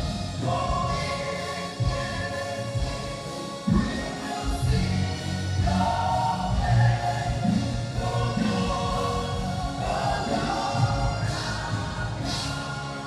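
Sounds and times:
congregation singing: 0.0 - 13.0
musical accompaniment: 0.0 - 13.0.

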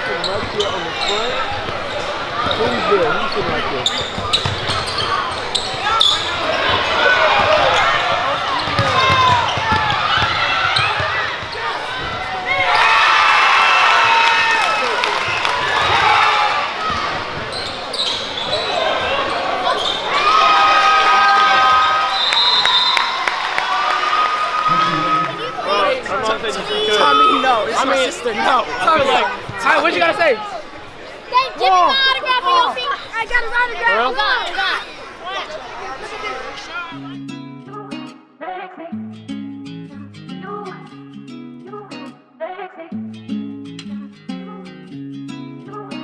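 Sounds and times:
crowd chatter: 0.0 - 39.0
spectators' voices: 0.0 - 39.0
basketball bouncing on court: 3.4 - 5.9, 8.5 - 12.3
basketball dribbling on hardwood: 8.7 - 11.1.

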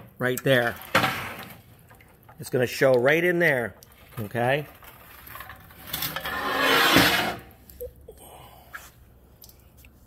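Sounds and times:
rubbing scrape: 6.2 - 7.5.

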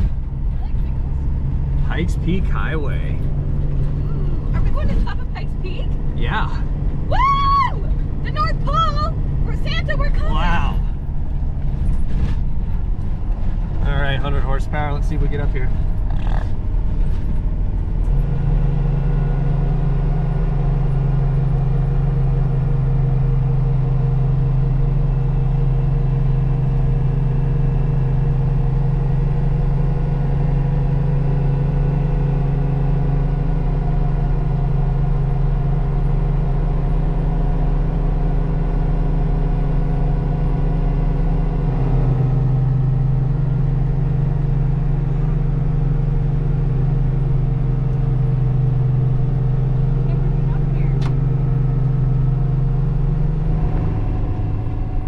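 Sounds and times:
car engine pulling uphill: 0.0 - 55.0.

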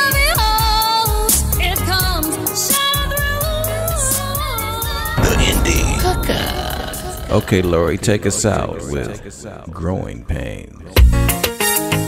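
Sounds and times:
rough gravelly voice: 5.2 - 11.0.

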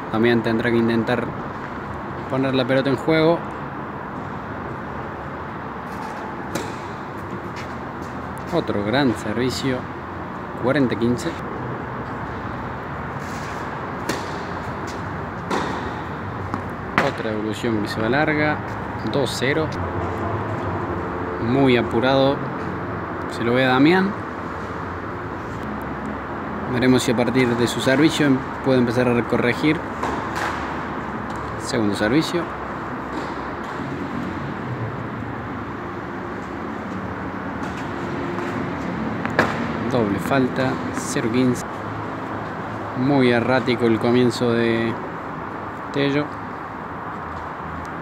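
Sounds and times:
tennis racket hitting ball: 5.9 - 7.8, 13.3 - 17.2, 29.9 - 31.5, 37.6 - 39.8.

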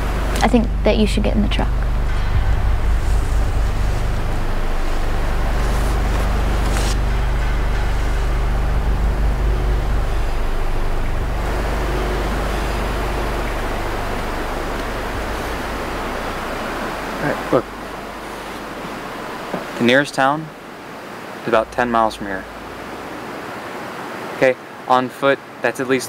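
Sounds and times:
truck engine idling: 0.0 - 19.8
constant hiss: 0.0 - 26.0.

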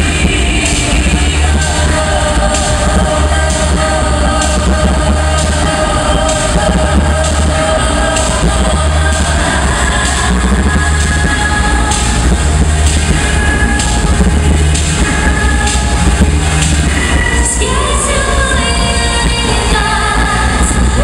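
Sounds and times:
beatboxed beat: 0.0 - 21.0
held voices singing: 0.0 - 21.0
vocal bass: 0.0 - 21.0.

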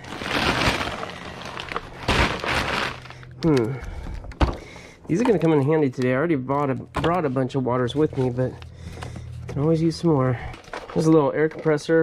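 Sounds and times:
plastic shrink-wrap crinkling: 0.0 - 3.6.

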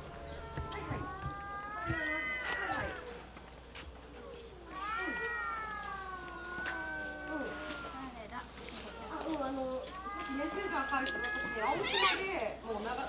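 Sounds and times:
cats meowing: 0.0 - 3.2, 4.4 - 12.5.

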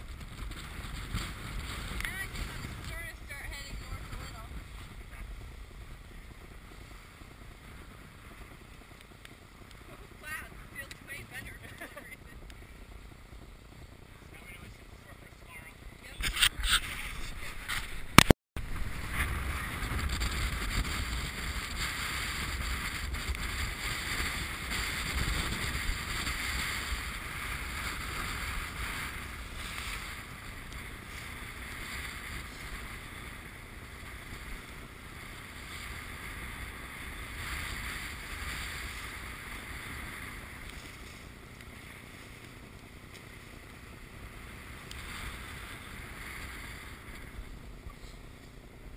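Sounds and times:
wind on microphone: 0.0 - 48.9
water rushing along hull: 18.6 - 48.9.

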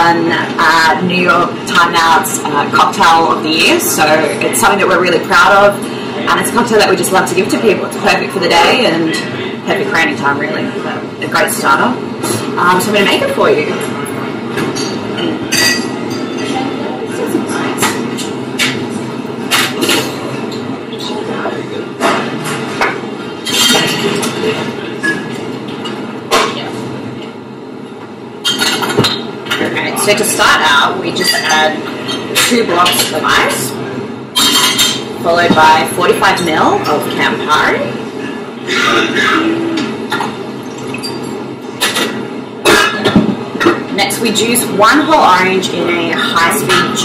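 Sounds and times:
room noise: 0.0 - 47.0
bar tools and glassware clinking: 14.6 - 16.7, 22.0 - 26.6, 28.4 - 30.2, 31.1 - 33.6, 34.4 - 35.5, 38.9 - 43.8
glassware and metal tools clinking: 14.7 - 16.6, 34.4 - 35.0, 40.8 - 41.4.

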